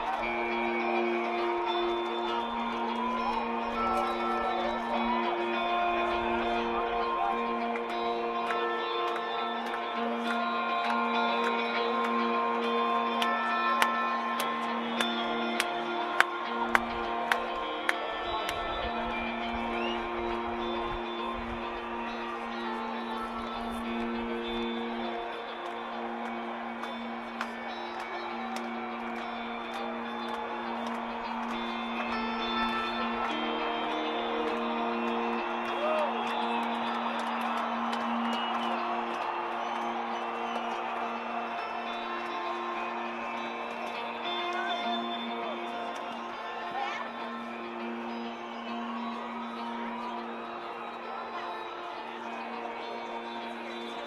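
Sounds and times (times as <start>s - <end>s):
electric guitar sustained notes: 0.0s - 54.0s.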